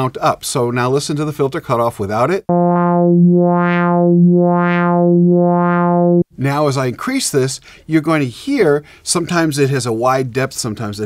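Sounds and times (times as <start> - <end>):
synthesizer note with filter sweep: 2.5 - 6.2.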